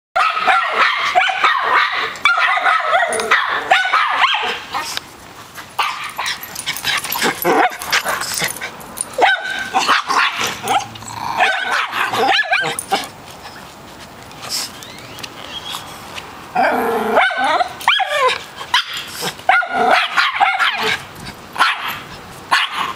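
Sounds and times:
small dogs barking: 0.2s - 5.0s, 5.8s - 8.5s, 9.1s - 13.1s, 17.1s - 22.9s.

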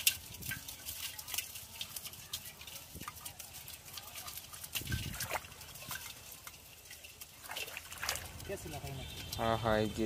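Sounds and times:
water splashes and drips: 0.0s - 10.0s.

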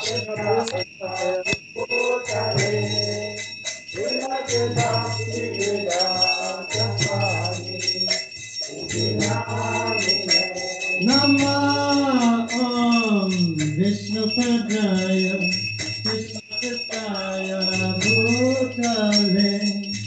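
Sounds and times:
devotional chanting: 0.0s - 20.0s
small hand bell ringing: 0.0s - 20.0s.

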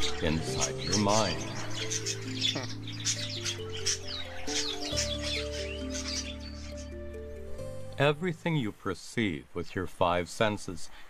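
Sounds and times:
birds chirping and calling: 0.0s - 8.3s
slow background music: 0.0s - 9.0s.

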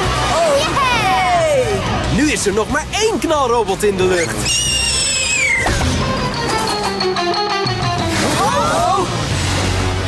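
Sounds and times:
falling cartoon whistle effect: 4.3s - 5.8s
background music with held notes: 5.7s - 10.0s.

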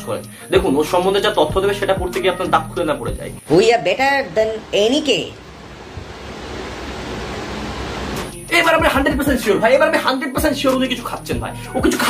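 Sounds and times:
air rushing on microphone: 4.5s - 8.9s.

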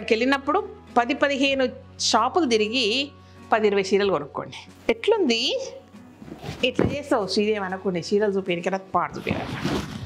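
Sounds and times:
woman's voice: 0.0s - 5.8s, 6.6s - 9.6s
fabric rustling: 6.0s - 7.4s, 9.2s - 10.0s.

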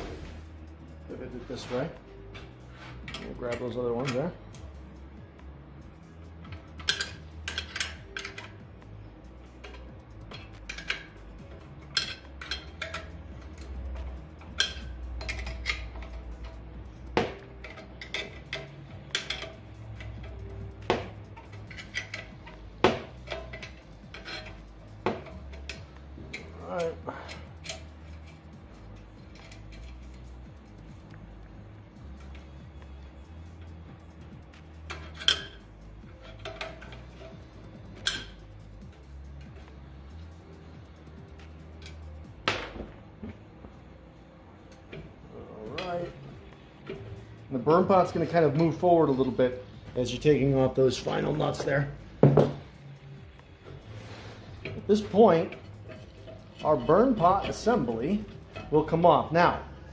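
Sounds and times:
wrench clinking on metal: 6.2s - 8.7s, 9.4s - 20.6s, 21.2s - 30.3s, 34.5s - 42.3s, 45.6s - 53.0s, 54.6s - 59.8s.

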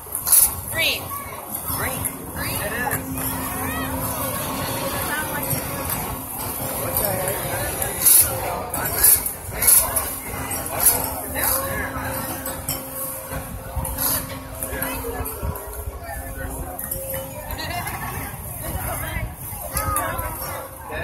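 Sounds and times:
crowd chatter: 0.0s - 21.0s
steady low hum: 0.0s - 21.0s.

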